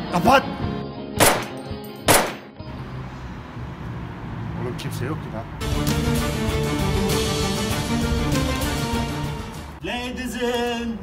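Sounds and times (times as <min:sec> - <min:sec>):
background music: 0:00.0 - 0:03.3, 0:05.6 - 0:11.0
pistol gunshots: 0:01.2 - 0:02.6.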